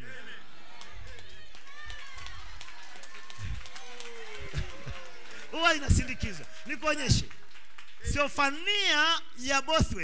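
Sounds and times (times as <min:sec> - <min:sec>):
scattered hand claps: 0:00.7 - 0:08.1.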